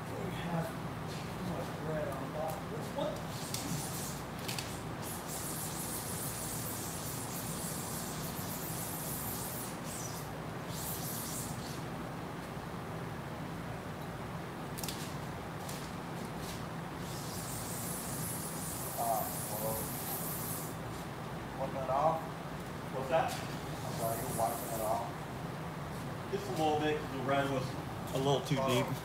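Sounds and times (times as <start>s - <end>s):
hiss: 3.3s - 11.8s, 17.0s - 20.8s, 23.8s - 25.1s.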